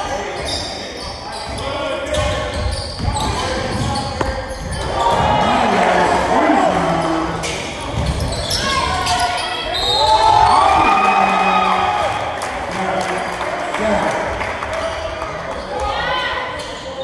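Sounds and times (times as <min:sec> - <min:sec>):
echoing voices: 0:00.0 - 0:09.7.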